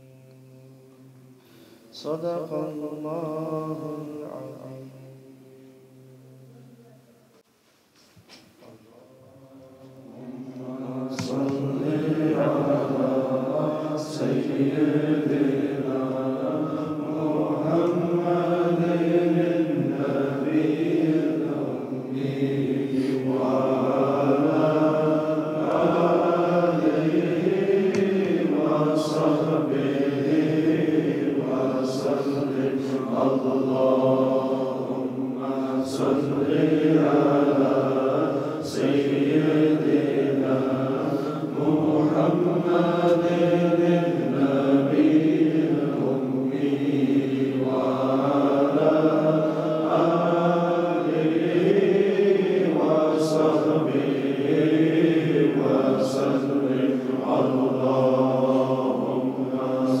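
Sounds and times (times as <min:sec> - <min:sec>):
voices chanting melodically: 0:08.6 - 1:00.0.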